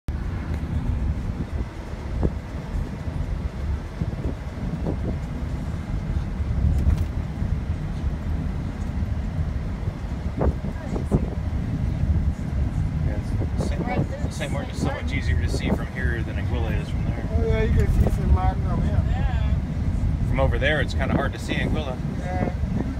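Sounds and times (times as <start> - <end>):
car road and engine rumble: 0.0 - 22.9.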